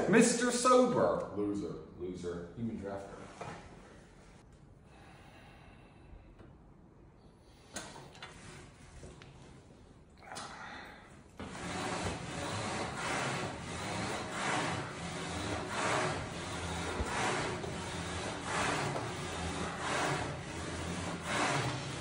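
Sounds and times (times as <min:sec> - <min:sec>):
man breathing hard: 0:04.8 - 0:06.5, 0:10.2 - 0:11.3.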